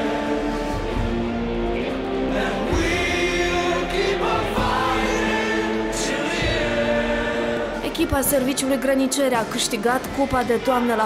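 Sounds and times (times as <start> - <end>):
choir singing held notes: 0.0 - 8.6.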